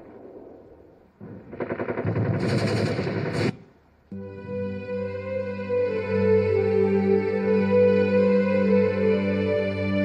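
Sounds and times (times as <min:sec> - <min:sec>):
machine-gun fire: 0:00.0 - 0:03.8.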